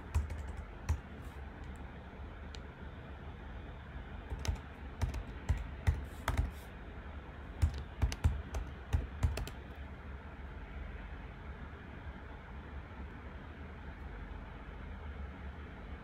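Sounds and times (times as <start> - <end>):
typing on computer keyboard: 0.0 - 1.8, 4.3 - 6.6, 7.6 - 9.6
faint low hum: 0.0 - 16.0.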